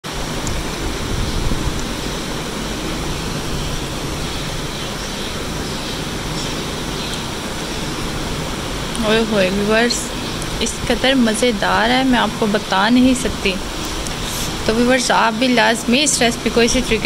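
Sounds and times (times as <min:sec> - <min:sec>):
steady rushing noise: 0:00.0 - 0:17.0.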